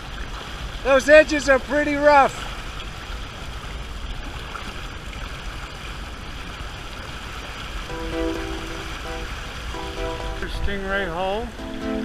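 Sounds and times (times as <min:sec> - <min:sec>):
churning boat wake: 0:00.0 - 0:12.0
water rushing along a hull: 0:00.0 - 0:12.0
held musical notes: 0:07.9 - 0:12.0.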